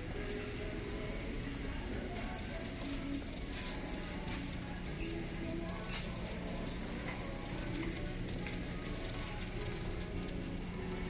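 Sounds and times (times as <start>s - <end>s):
faint store background music: 0.0s - 11.0s
low hum of shop ambience: 0.0s - 11.0s.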